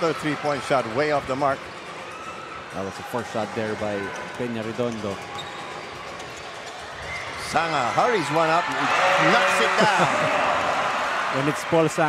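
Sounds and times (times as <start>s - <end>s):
indoor arena background noise: 0.0s - 12.0s.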